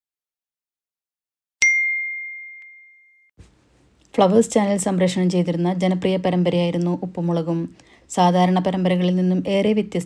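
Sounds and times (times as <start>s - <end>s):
high notification bell ding: 1.6s - 3.3s
faint room hiss: 3.4s - 10.0s.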